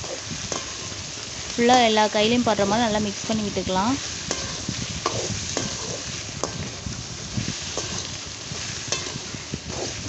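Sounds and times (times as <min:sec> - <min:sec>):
spatula scraping a wok: 0:00.0 - 0:01.7, 0:04.0 - 0:10.0
vegetables sizzling in oil: 0:00.0 - 0:10.0.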